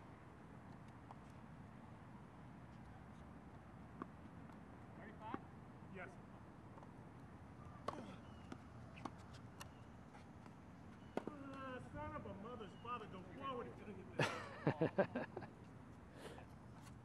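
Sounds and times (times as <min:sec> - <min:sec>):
tennis balls bouncing on court: 0:07.8 - 0:09.8, 0:10.4 - 0:11.7
tennis balls struck by rackets: 0:10.4 - 0:11.7.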